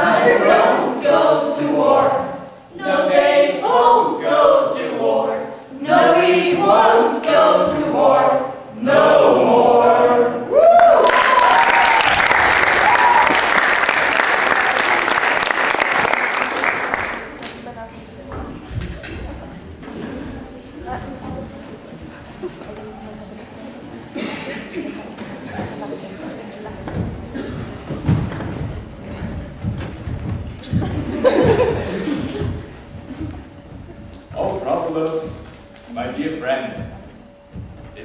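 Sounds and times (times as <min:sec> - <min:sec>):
group singing unaccompanied: 0:00.0 - 0:10.5, 0:30.6 - 0:38.0
audience applause: 0:10.6 - 0:17.6.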